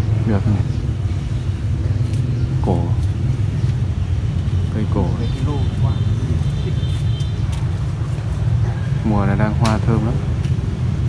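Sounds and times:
man speaking: 0.0 - 0.9, 2.6 - 3.2, 4.7 - 7.0, 9.0 - 10.3.

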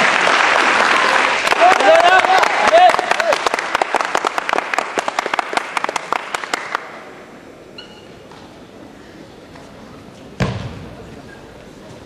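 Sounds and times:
audience applause: 0.0 - 7.0.

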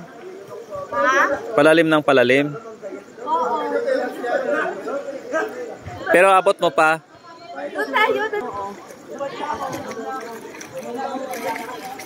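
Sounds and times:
indistinct voices chattering: 0.0 - 12.0.

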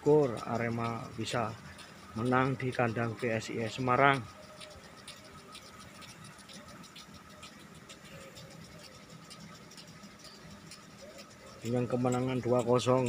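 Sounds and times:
light ticks: 0.0 - 13.0
sprinklers spraying water: 0.0 - 13.0.

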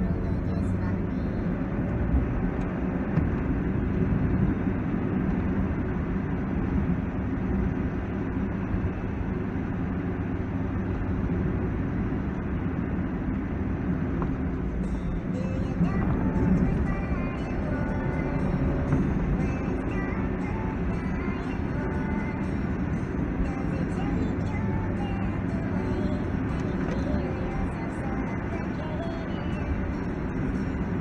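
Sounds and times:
car engine and road noise: 0.0 - 31.0.

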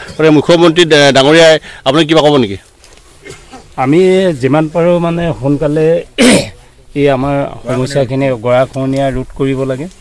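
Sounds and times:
man speaking: 0.0 - 2.7, 3.6 - 10.0
man coughing harshly: 3.2 - 3.8, 6.2 - 6.6.

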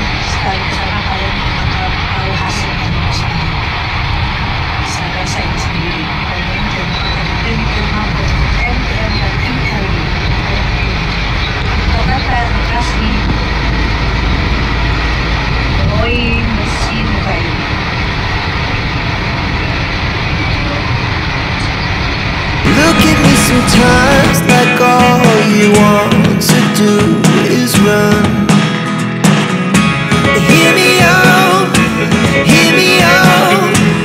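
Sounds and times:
faint voices: 0.0 - 3.9, 4.5 - 17.9, 19.4 - 22.0, 22.6 - 28.1
vehicle road and engine rumble: 0.0 - 24.4.

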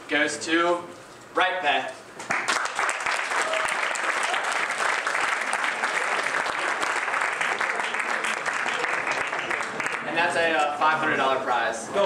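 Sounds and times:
audience applauding: 2.3 - 10.1.

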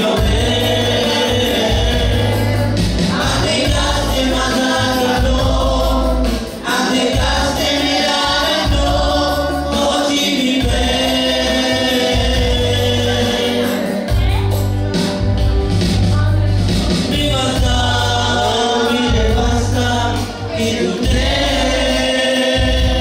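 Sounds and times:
congregation singing: 0.0 - 15.5, 16.7 - 23.0
amplified backing music: 0.0 - 23.0.

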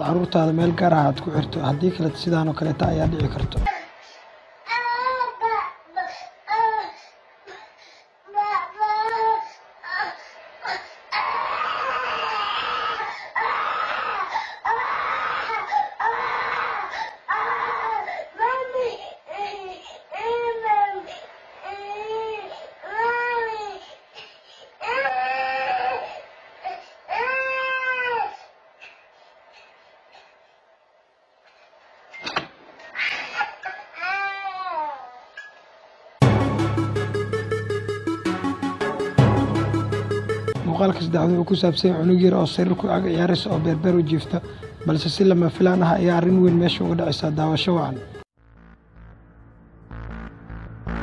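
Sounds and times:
toddler crying: 4.7 - 7.0, 8.3 - 23.8, 24.8 - 28.4, 33.0 - 35.3.

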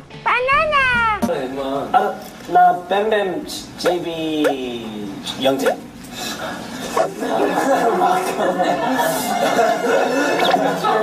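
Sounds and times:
people talking: 0.3 - 5.8.

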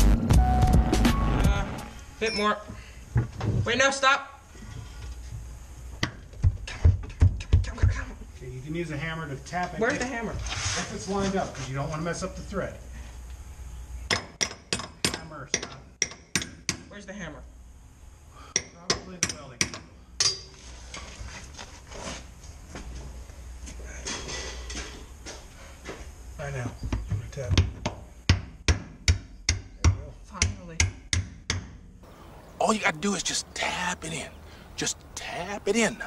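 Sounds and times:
metal-on-metal taps with ring: 18.6 - 20.5.

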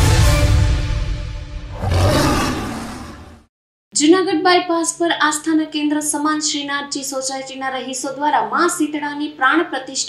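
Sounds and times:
lion's roar sound effect: 1.7 - 3.5.

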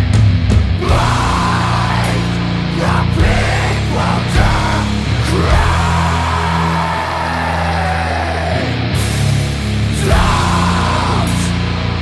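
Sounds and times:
distorted guitars and bass: 0.0 - 12.0.

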